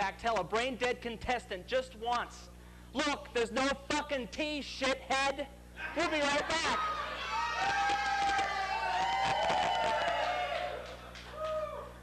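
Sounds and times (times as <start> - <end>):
audience laughing and cheering: 6.0 - 12.0
scattered clapping: 7.7 - 11.6.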